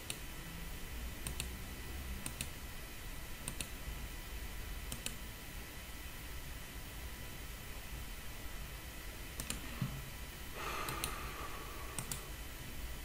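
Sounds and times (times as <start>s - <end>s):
computer mouse clicking: 0.0s - 0.2s, 1.2s - 1.5s, 2.2s - 2.6s, 3.4s - 3.7s, 4.9s - 5.2s, 9.4s - 9.6s, 10.9s - 11.2s, 12.0s - 12.3s
faint steady hum: 0.0s - 13.0s.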